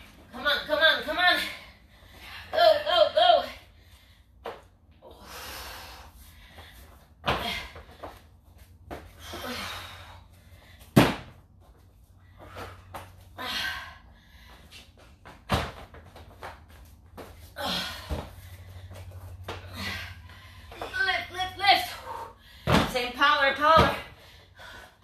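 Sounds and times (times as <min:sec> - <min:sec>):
breathing: 0:03.7 - 0:04.4, 0:05.1 - 0:08.2, 0:12.2 - 0:14.9, 0:21.9 - 0:22.8, 0:24.1 - 0:25.0.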